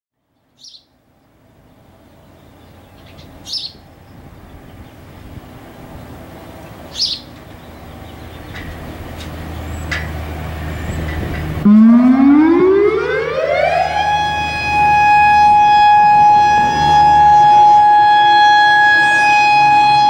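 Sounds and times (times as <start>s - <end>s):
small bird chirping: 0.4s - 0.9s, 2.1s - 10.0s
low hum: 7.6s - 19.9s.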